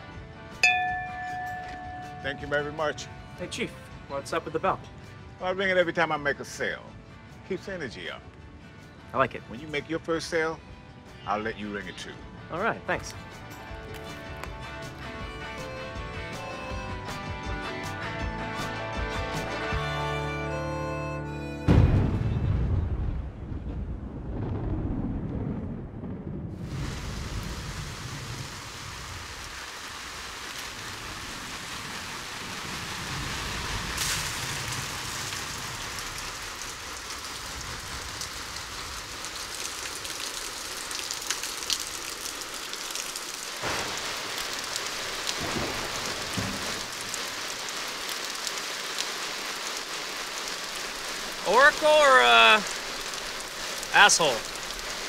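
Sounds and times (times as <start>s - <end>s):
steady rain: 1.0s - 6.6s, 23.2s - 55.0s
thunderclap with low rumble: 21.7s - 29.3s, 43.6s - 47.5s.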